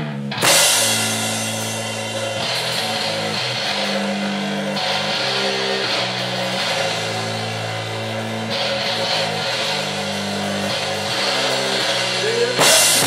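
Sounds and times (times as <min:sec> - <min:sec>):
electric guitar and bass chords: 0:00.0 - 0:13.0.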